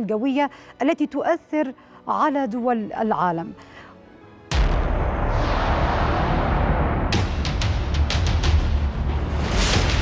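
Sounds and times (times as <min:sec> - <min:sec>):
deep boom: 0:04.5 - 0:10.0
dramatic intro music rumble: 0:04.5 - 0:10.0.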